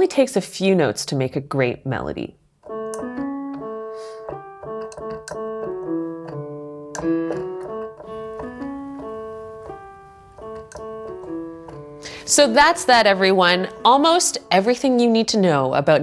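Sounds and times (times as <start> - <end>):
slow piano melody: 2.6 - 15.4.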